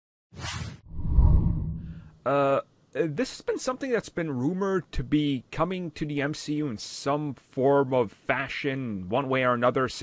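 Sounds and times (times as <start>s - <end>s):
short whoosh: 0.4s - 2.2s
deep rumbling boom: 0.9s - 2.2s.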